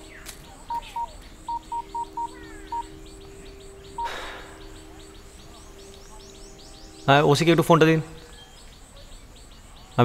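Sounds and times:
faint bird chirps: 0.0s - 10.0s
phone keypad beeps: 0.7s - 2.9s.

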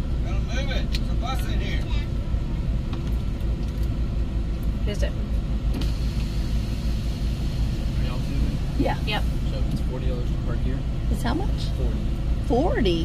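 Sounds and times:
car engine and tyres rumble: 0.0s - 13.0s.

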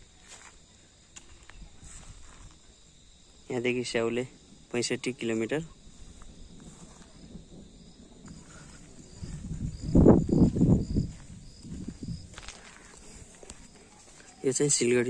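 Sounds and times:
faint insect chirping: 0.0s - 15.0s
wind buffeting microphone: 1.3s - 3.1s, 4.4s - 14.2s.

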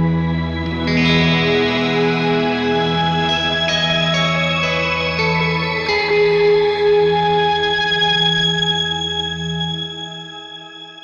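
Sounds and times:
electric guitar with reverb: 0.0s - 11.0s.

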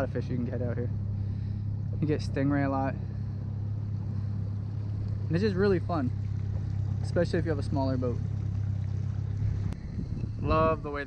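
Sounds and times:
outboard motor running: 0.0s - 11.0s.

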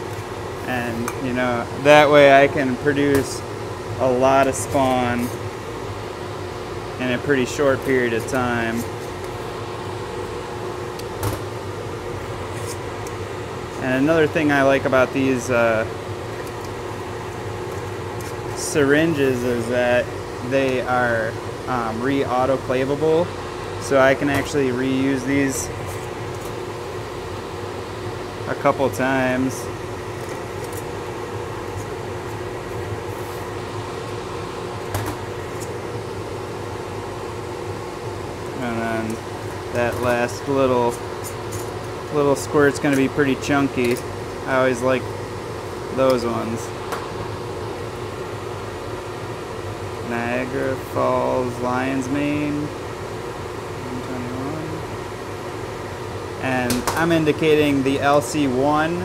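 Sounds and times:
mechanical fan humming: 0.0s - 59.0s.

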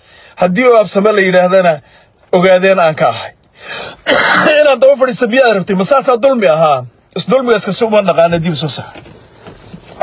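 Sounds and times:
man speaking: 0.4s - 3.4s, 4.1s - 9.0s
man clearing throat: 4.0s - 4.6s.

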